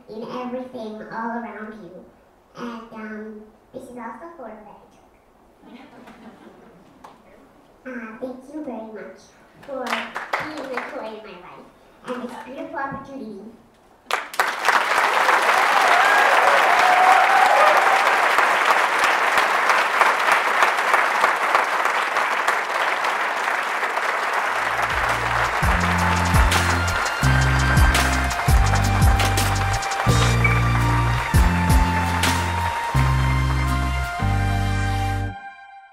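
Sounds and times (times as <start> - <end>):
audience applauding: 9.9 - 11.0, 14.1 - 34.5
instrumental music with heavy bass: 24.6 - 35.4.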